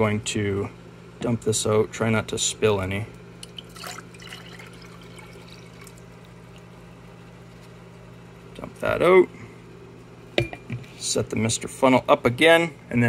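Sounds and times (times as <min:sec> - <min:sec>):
water pouring into glass cup: 0:03.5 - 0:06.7.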